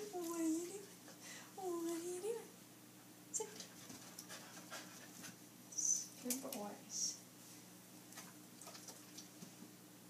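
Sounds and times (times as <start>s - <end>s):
dog panting: 3.6s - 5.4s.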